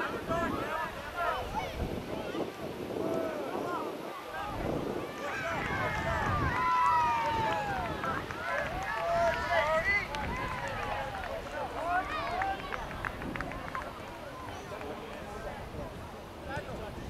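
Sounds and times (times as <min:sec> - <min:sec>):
voices shouting and calling out: 0:00.0 - 0:17.0.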